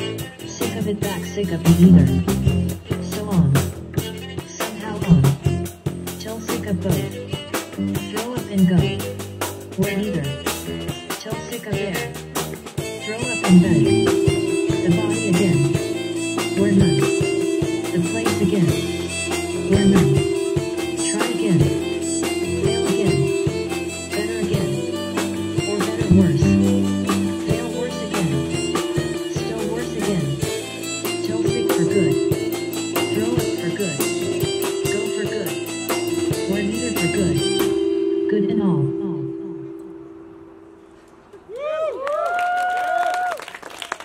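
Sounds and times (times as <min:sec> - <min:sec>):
steady drum beat: 0:00.0 - 0:37.8
live band playing instrumental: 0:00.0 - 0:39.8.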